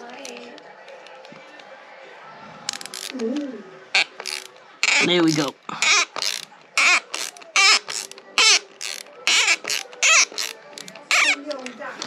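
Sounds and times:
bolt squeaking in threads: 0:02.7 - 0:03.3, 0:04.0 - 0:11.8
ratcheting hex driver: 0:02.7 - 0:03.4, 0:04.0 - 0:11.8.

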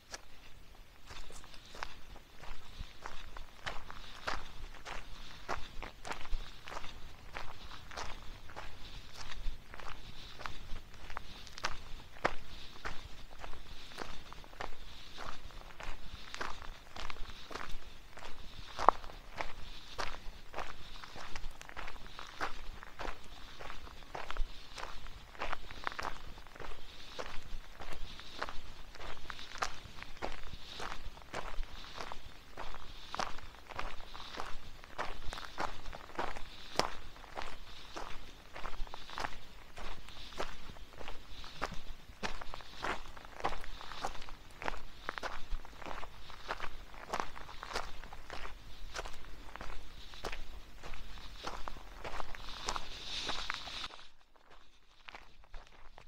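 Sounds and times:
footsteps on leafy dirt trail: 0:00.0 - 0:56.0.

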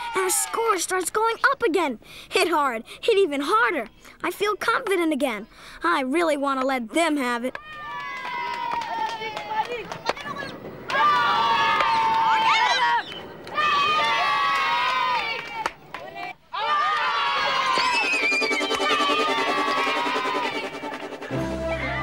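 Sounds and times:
boys shouting and cheering: 0:00.0 - 0:01.4, 0:07.5 - 0:22.0
music: 0:17.7 - 0:22.0.

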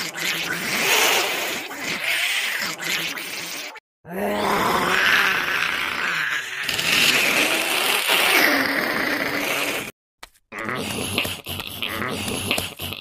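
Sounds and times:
creature groans and grunts: 0:00.0 - 0:09.9, 0:10.5 - 0:13.0.

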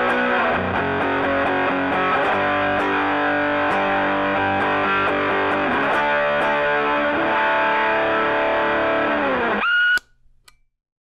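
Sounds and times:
overdriven electric guitar chord: 0:00.0 - 0:09.6.

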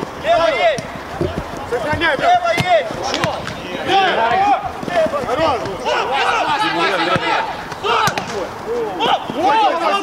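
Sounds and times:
ball being kicked: 0:00.7 - 0:03.6
men shouting: 0:01.7 - 0:10.0.

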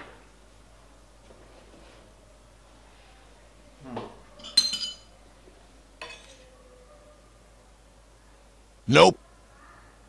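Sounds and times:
spoon clinking on plate: 0:04.4 - 0:05.1, 0:06.0 - 0:06.4.

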